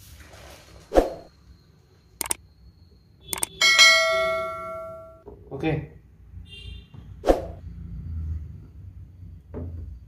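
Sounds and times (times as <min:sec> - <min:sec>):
mouse double click: 0:03.3 - 0:03.6
bright bell ding: 0:03.6 - 0:05.2.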